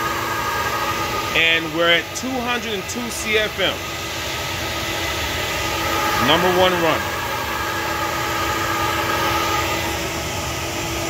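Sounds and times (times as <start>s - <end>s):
steady motor hum: 0.0s - 11.0s.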